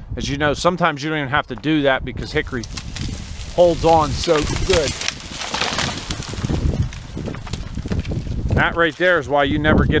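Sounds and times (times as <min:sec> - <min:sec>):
wood cracking and thudding: 0:02.5 - 0:09.6
tree crashing through brush: 0:02.6 - 0:09.4.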